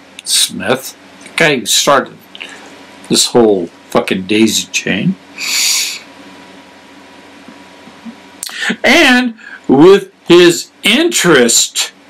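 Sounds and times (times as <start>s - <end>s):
faint room hum: 0.0s - 12.0s
hiss of rushing air: 5.4s - 6.1s.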